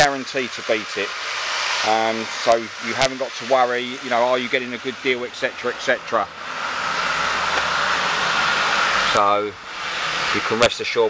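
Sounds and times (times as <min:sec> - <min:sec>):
loud mechanical rushing noise: 0:00.0 - 0:11.0.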